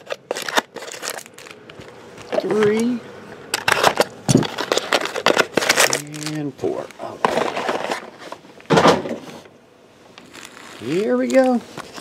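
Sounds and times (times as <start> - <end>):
foil card packs crinkling: 0.0 - 8.5, 10.0 - 12.0.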